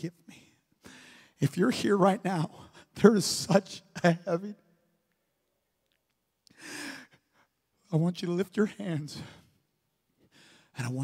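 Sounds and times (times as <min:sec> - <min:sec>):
man breathing: 0:00.7 - 0:01.4, 0:06.5 - 0:07.6, 0:10.2 - 0:10.8.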